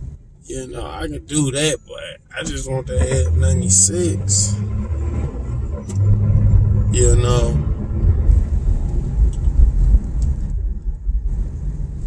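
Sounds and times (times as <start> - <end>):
car interior road rumble: 0.0 - 12.0.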